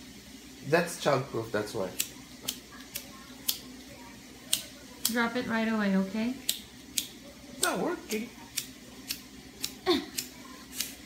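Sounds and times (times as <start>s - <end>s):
lighter clicking: 2.0s - 3.7s, 4.5s - 5.2s, 6.4s - 7.8s, 8.5s - 11.0s.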